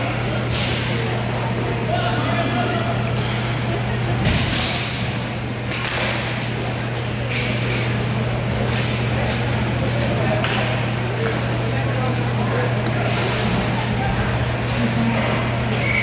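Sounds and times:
sticks and puck clacking: 0:05.7 - 0:06.2.

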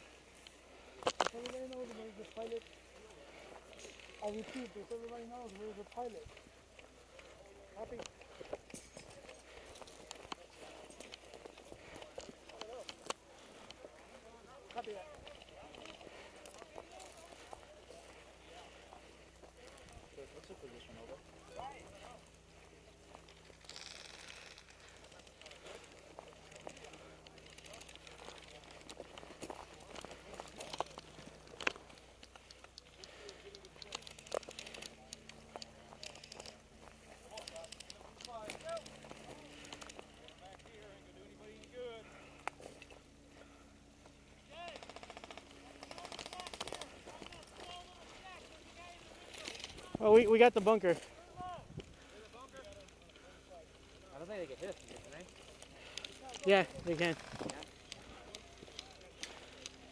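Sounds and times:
faint distant voices: 0:00.0 - 0:50.1, 0:50.8 - 0:59.9
sharp cracks: 0:44.6 - 0:47.8.

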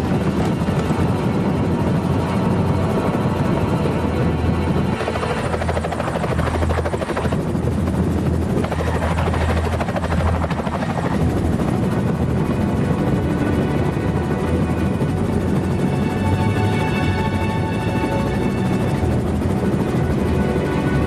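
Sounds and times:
helicopter rotor chopping: 0:00.0 - 0:21.0
low engine drone: 0:00.0 - 0:21.0.

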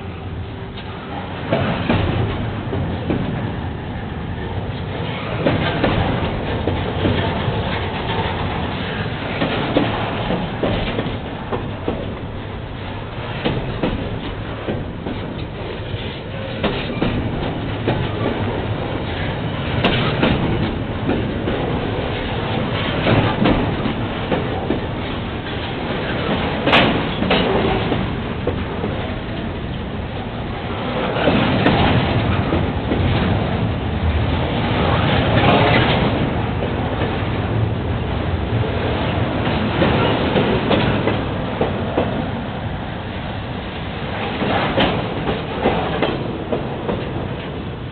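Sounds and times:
steel wheels rumbling on rails: 0:00.0 - 0:47.9
train wheels clicking and knocking: 0:00.7 - 0:03.8, 0:04.5 - 0:47.9.

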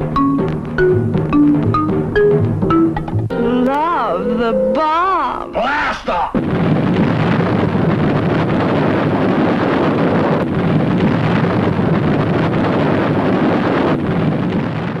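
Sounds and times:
explosion roar deep rumbling: 0:06.4 - 0:15.0.

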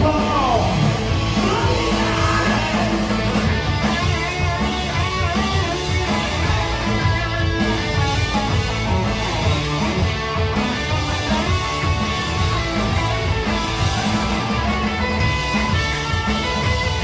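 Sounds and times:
rock band playing live: 0:00.0 - 0:17.0.

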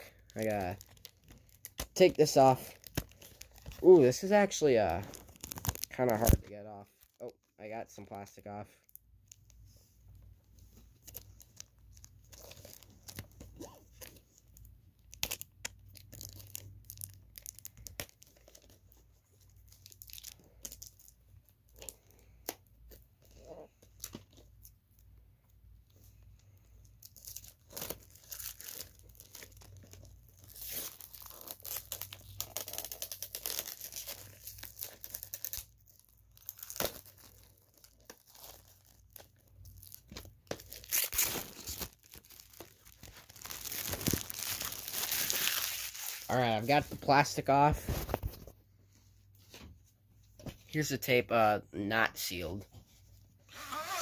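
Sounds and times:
plastic wrap crinkling and tearing: 0:00.0 - 0:07.3, 0:10.7 - 0:24.8, 0:26.8 - 0:46.8.

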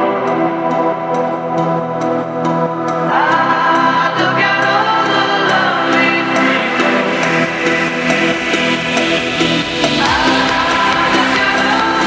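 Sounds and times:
choir-like vocal chords: 0:00.0 - 0:12.0
trance music: 0:00.0 - 0:12.0.

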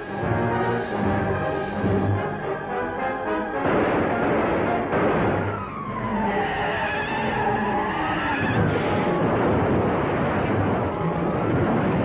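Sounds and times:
car engine and road noise: 0:00.0 - 0:12.0
high squeal sliding in pitch: 0:06.2 - 0:08.7.

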